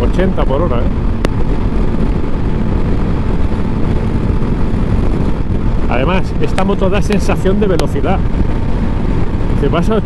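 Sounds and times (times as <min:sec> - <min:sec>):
motorcycle engine cruising: 0:00.0 - 0:10.0
wind rushing over microphone: 0:00.0 - 0:10.0.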